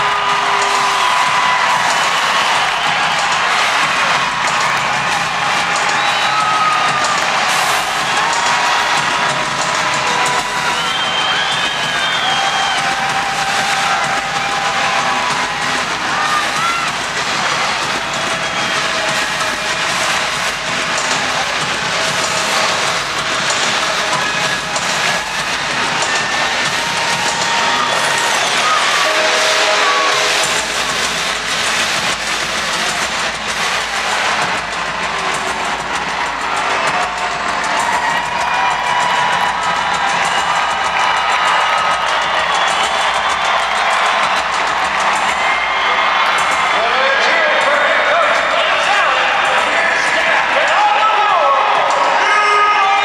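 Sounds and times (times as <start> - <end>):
people shouting: 0.0 - 31.9, 32.7 - 53.0
stadium crowd cheering: 0.0 - 53.0
whistles: 5.8 - 6.9, 10.3 - 13.0.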